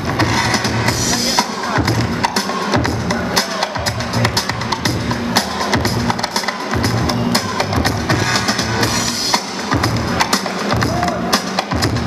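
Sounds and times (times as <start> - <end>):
break music with drum beat: 0.0 - 12.0.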